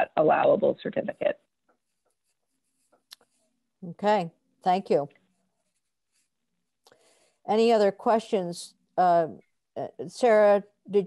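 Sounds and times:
person speaking: 0.0 - 1.4.

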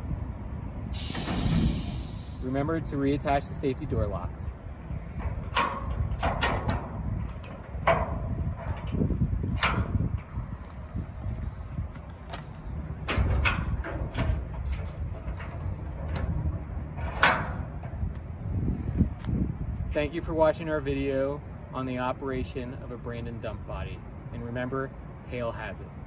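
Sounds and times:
metal clicks and clanks: 5.2 - 10.8, 13.0 - 18.0.

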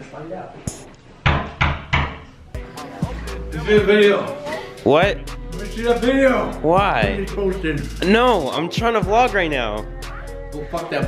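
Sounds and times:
pounding on a door: 1.2 - 2.3.

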